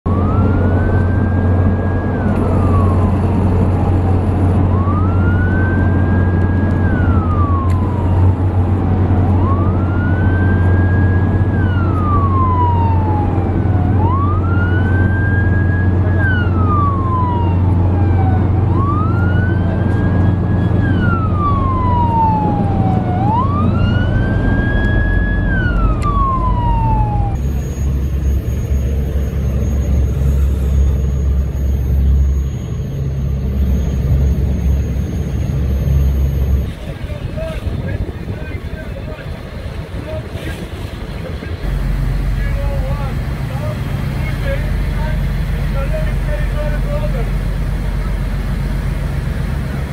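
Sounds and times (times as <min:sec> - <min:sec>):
boat siren wailing: 0:00.1 - 0:49.9
steady low rumble: 0:00.1 - 0:49.9.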